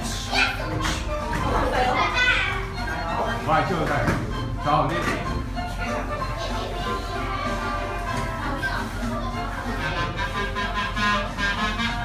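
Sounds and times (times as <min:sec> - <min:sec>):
children talking and calling out: 0:00.0 - 0:03.4, 0:05.7 - 0:12.0
music playing: 0:00.0 - 0:12.0.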